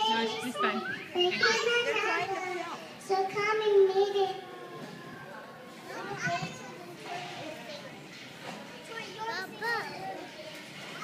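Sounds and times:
hubbub of children playing: 0:00.0 - 0:11.0
young children's vocal bursts: 0:00.1 - 0:03.0.

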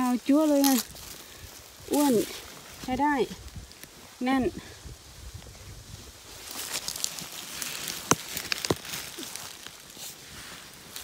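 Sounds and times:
twigs snapping: 0:00.0 - 0:02.8, 0:03.4 - 0:04.0, 0:06.3 - 0:11.0
leaves and twigs crackling underfoot: 0:00.0 - 0:11.0.

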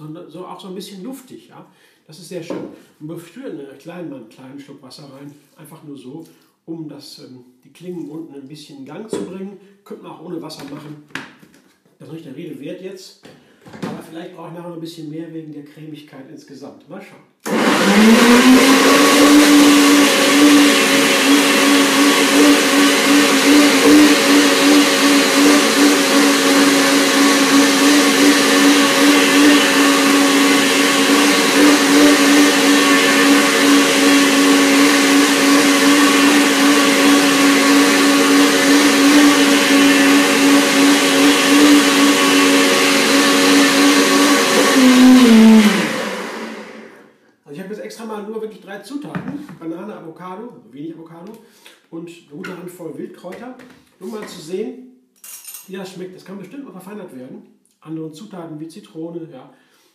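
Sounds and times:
blender motor running: 0:17.4 - 0:47.1.

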